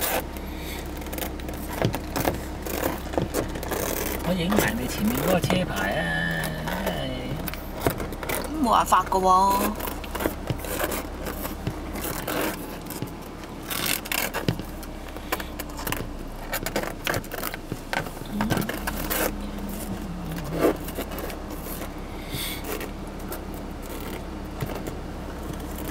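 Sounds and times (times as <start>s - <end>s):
steady low hum: 0.0s - 25.9s
tortoise claws scraping on plastic: 0.0s - 25.9s.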